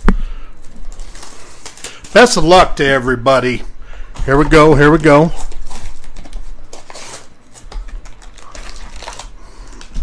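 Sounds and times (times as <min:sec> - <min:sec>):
card packs rustling and crackling: 0:00.6 - 0:02.6, 0:03.5 - 0:10.0.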